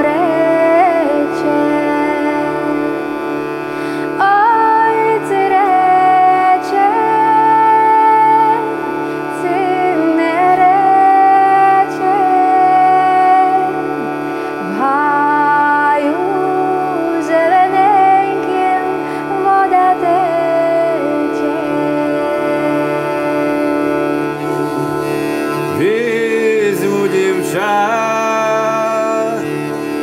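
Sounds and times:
woman singing folk melody: 0:00.0 - 0:26.0
hurdy-gurdy drone: 0:00.0 - 0:30.0.

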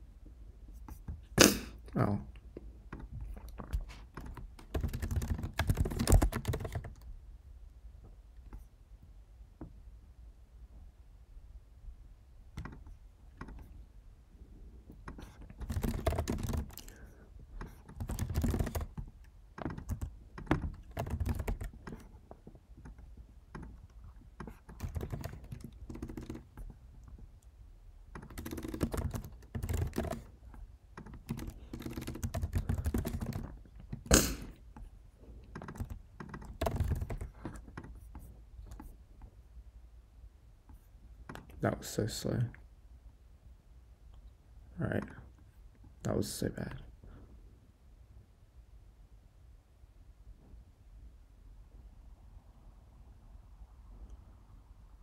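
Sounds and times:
typing on computer keyboard: 0:02.9 - 0:07.1, 0:12.6 - 0:13.8, 0:15.0 - 0:27.2, 0:28.1 - 0:34.2, 0:34.8 - 0:38.9, 0:41.2 - 0:41.6.

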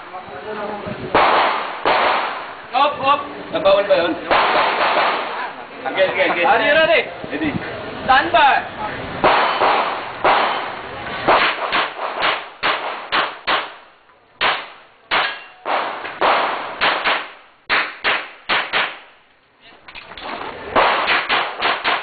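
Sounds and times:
pistol shots with echo: 0:01.2 - 0:02.5, 0:04.3 - 0:05.4, 0:09.2 - 0:19.1, 0:20.7 - 0:22.0.

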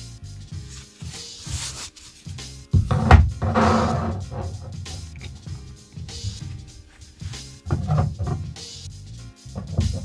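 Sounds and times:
background music: 0:00.0 - 0:10.0
canvas rubbing on table: 0:00.6 - 0:05.3, 0:06.1 - 0:08.5.

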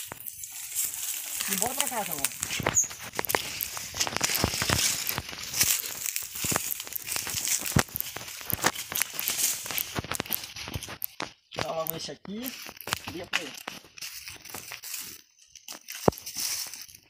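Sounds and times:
dry leaves rustling and crackling: 0:00.0 - 0:17.0
footsteps on dry leaves: 0:00.0 - 0:17.0.

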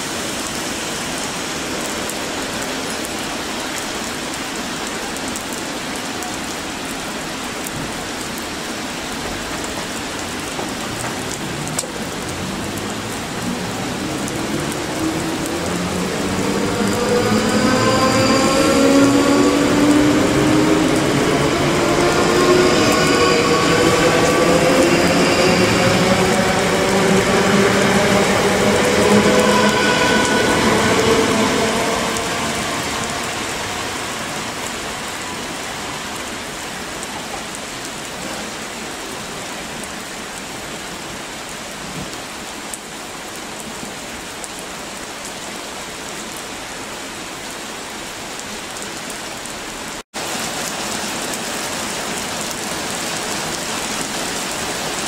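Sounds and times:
heavy rain hissing: 0:00.0 - 0:55.0.

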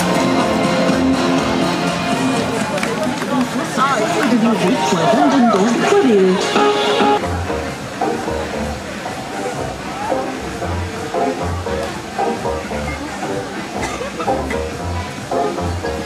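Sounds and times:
music with pulsing bass: 0:00.0 - 0:02.8, 0:04.5 - 0:16.0
voices in music: 0:00.0 - 0:16.0.

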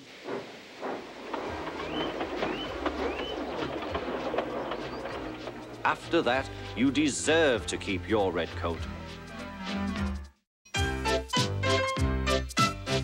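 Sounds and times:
model steam locomotive running: 0:00.2 - 0:08.8
background music: 0:05.6 - 0:13.0.

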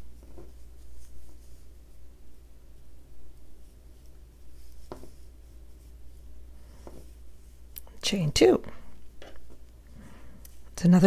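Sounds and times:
yarn rustling on crochet hook: 0:00.0 - 0:08.6.

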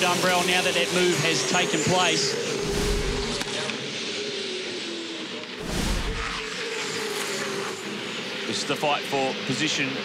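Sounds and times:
race car engines droning: 0:00.0 - 0:10.0
whooshing boom effect: 0:02.6 - 0:03.4, 0:05.6 - 0:06.4.

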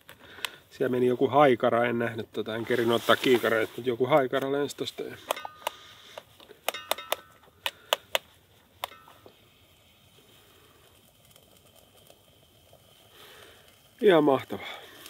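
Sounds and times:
utensil clinking in metal pot: 0:05.2 - 0:05.8, 0:06.6 - 0:07.4, 0:08.8 - 0:09.4.

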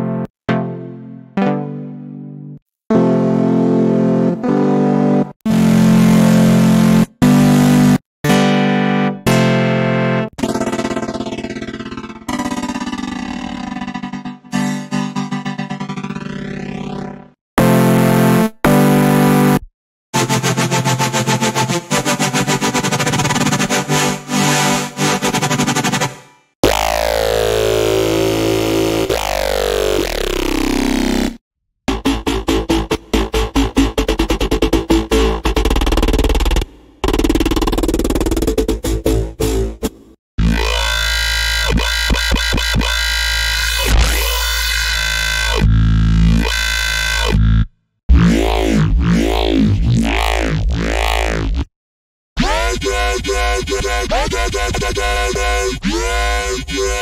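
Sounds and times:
bright synth chords: 0:00.0 - 0:05.2.

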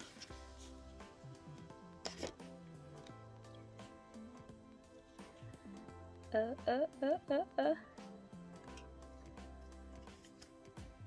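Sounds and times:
paper card rustling: 0:00.0 - 0:00.8, 0:02.0 - 0:02.5, 0:10.0 - 0:10.6
quiet background music: 0:00.0 - 0:11.0.

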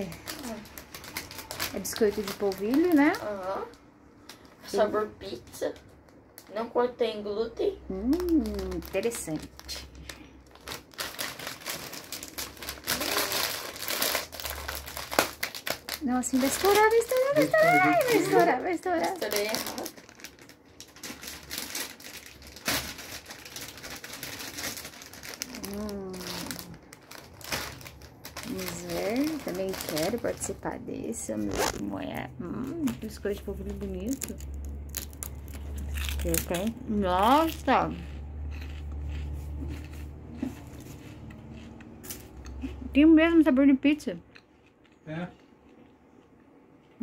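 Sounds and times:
plastic snack bag crinkling: 0:00.0 - 0:06.8, 0:07.9 - 0:42.4
crunchy snack being chewed: 0:34.2 - 0:36.7, 0:37.3 - 0:42.7.

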